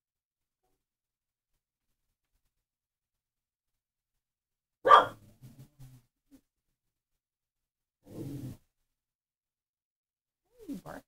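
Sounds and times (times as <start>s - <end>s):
dog bark: 4.8s - 5.2s.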